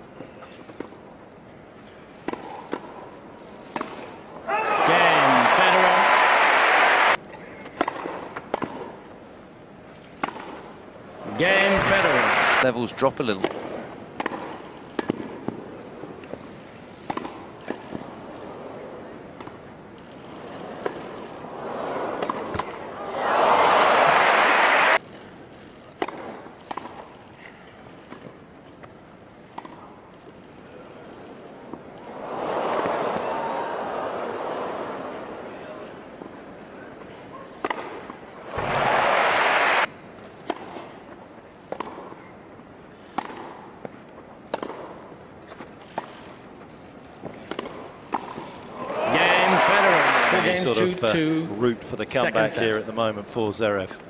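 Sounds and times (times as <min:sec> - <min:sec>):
tennis balls struck by rackets: 0:02.2 - 0:03.1, 0:03.7 - 0:04.2, 0:07.7 - 0:09.0, 0:10.2 - 0:10.7, 0:13.3 - 0:16.4, 0:17.0 - 0:18.1, 0:22.1 - 0:22.9, 0:25.9 - 0:27.1, 0:29.5 - 0:29.9, 0:37.6 - 0:42.3, 0:43.1 - 0:46.1, 0:47.2 - 0:48.6
crowd applause and cheering: 0:04.5 - 0:07.2, 0:11.4 - 0:12.6, 0:23.0 - 0:25.0, 0:32.1 - 0:35.3, 0:38.4 - 0:39.9, 0:48.8 - 0:51.1.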